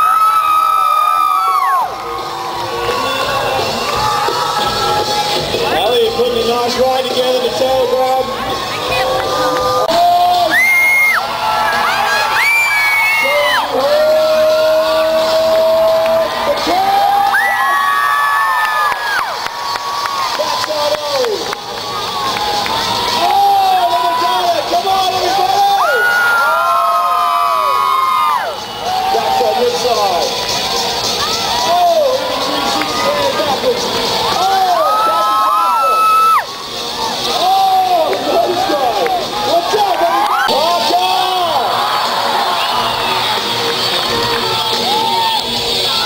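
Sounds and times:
audience cheering and screaming: 0:00.0 - 0:46.0.

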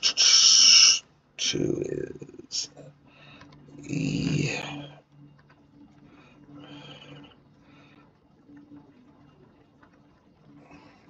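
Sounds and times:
low wavering hum: 0:01.2 - 0:11.0
soft breath: 0:03.0 - 0:03.7, 0:05.9 - 0:08.2, 0:10.6 - 0:11.0.

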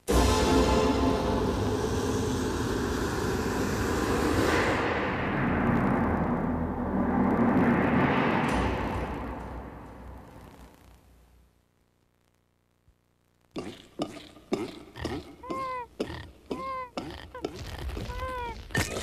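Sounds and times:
loud rumbling whoosh: 0:03.6 - 0:10.4.

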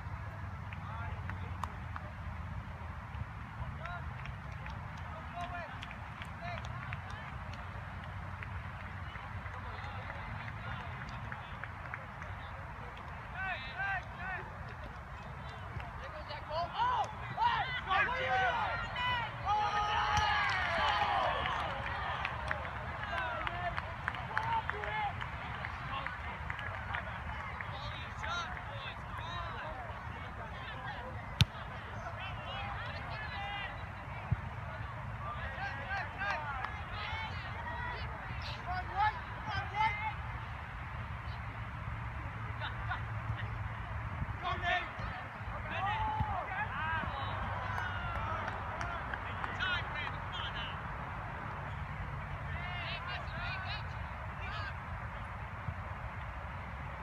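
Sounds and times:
distant shouts of players: 0:16.6 - 0:25.2, 0:45.7 - 0:50.8.

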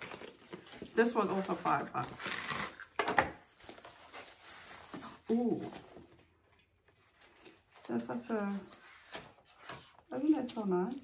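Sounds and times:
bubble wrap rustling and crackling: 0:00.0 - 0:11.0.

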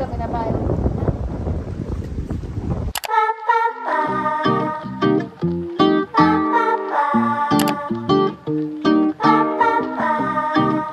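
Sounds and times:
wind buffeting microphone: 0:00.0 - 0:03.0
plucked guitar music: 0:04.0 - 0:10.9.

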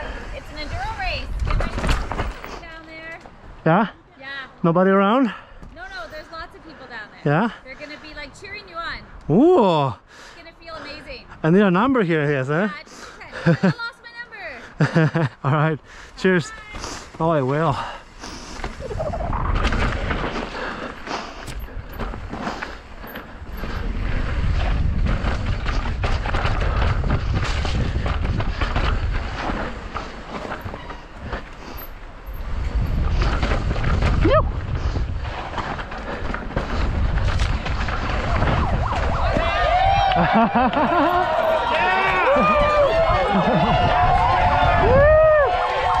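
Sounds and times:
wind rumbling on microphone: 0:00.0 - 0:02.7, 0:17.8 - 0:46.0
bike clattering on rocks: 0:01.4 - 0:03.4.

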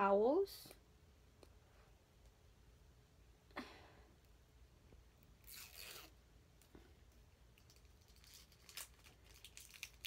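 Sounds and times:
soft rustle of small tube: 0:05.4 - 0:10.0.

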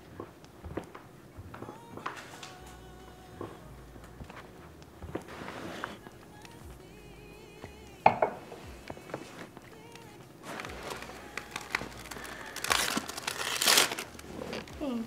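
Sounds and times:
paper rustling and crinkling: 0:08.6 - 0:15.0.

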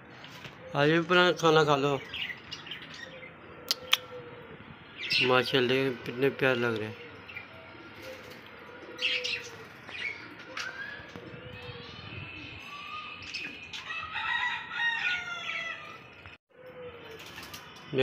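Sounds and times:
budgerigars chirping and warbling: 0:05.0 - 0:14.1
wing flutters: 0:17.0 - 0:17.9.

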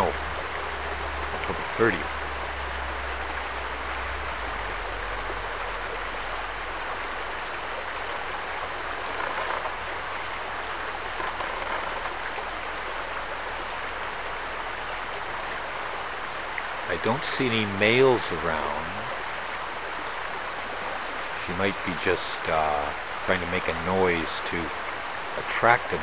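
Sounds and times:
creek water running over gravel: 0:00.0 - 0:26.0.

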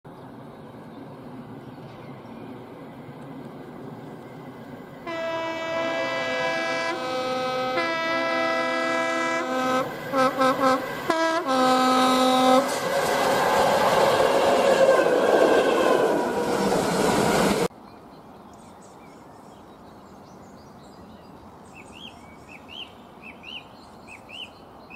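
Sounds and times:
train rumble and wheel clatter: 0:00.1 - 0:17.7
locomotive two-tone horn: 0:05.0 - 0:12.8.

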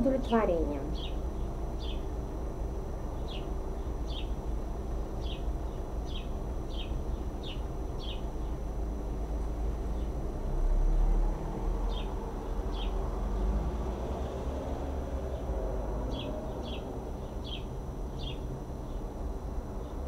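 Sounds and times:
bird chirping: 0:00.0 - 0:02.1, 0:03.1 - 0:04.4, 0:05.2 - 0:08.6, 0:11.9 - 0:13.0, 0:16.1 - 0:19.0
steady low rumble: 0:00.0 - 0:20.0.

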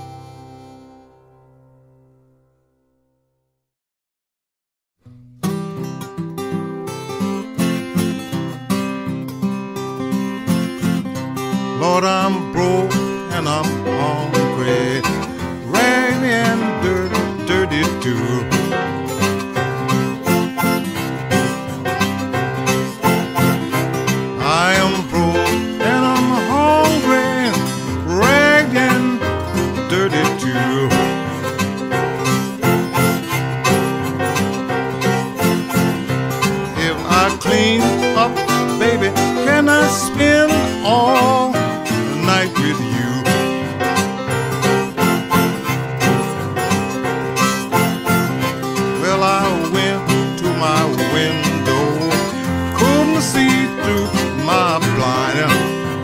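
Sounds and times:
harmonica playing bent phrases: 0:00.0 - 0:01.3, 0:13.2 - 0:56.0
fingerpicked acoustic guitar: 0:00.0 - 0:02.8, 0:05.0 - 0:56.0.

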